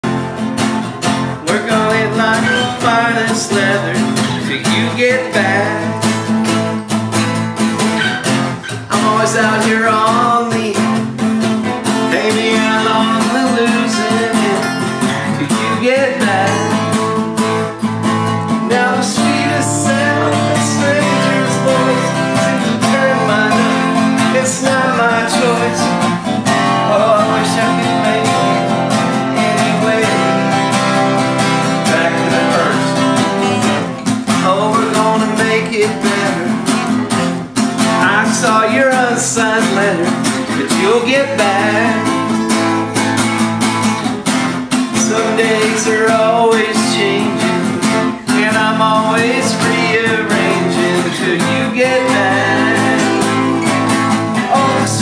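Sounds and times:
acoustic guitars strumming: 0:00.0 - 0:55.0.

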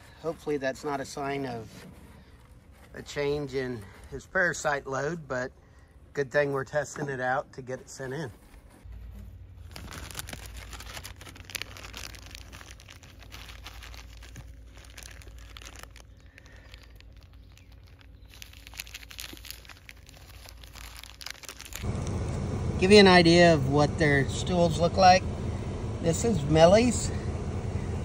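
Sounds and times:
plastic bag crinkling: 0:08.8 - 0:22.0
low rumble: 0:20.5 - 0:28.0.

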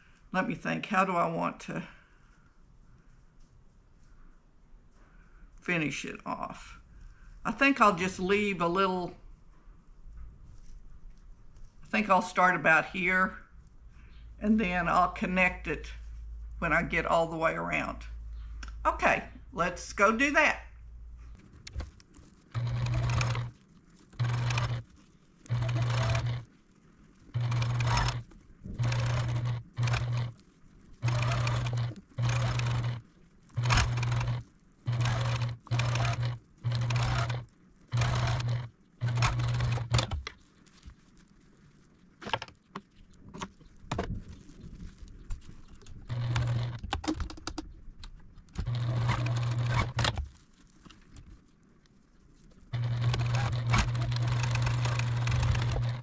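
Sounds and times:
sewing machine stitching: 0:22.5 - 0:23.5, 0:24.1 - 0:24.8, 0:25.4 - 0:26.5, 0:27.3 - 0:30.4, 0:31.0 - 0:40.3, 0:46.0 - 0:47.3, 0:48.6 - 0:50.3, 0:52.7 - 0:56.0.

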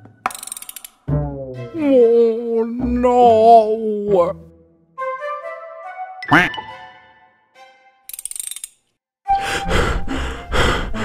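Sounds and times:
ratcheting rattle of quick clicks: 0:00.3 - 0:01.0, 0:08.1 - 0:08.8.

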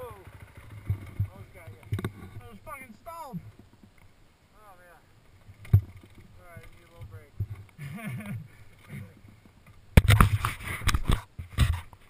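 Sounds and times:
muffled dirt bike engine: 0:00.0 - 0:04.2.

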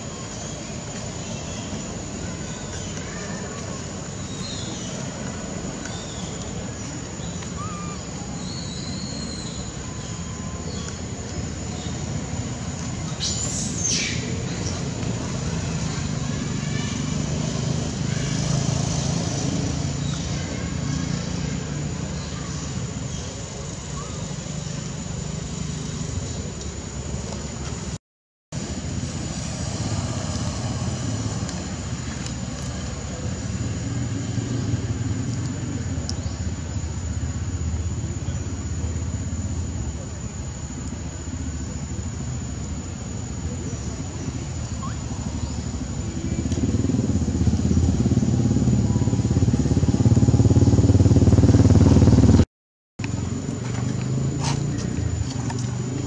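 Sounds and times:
low outdoor rumble: 0:28.6 - 0:52.4.

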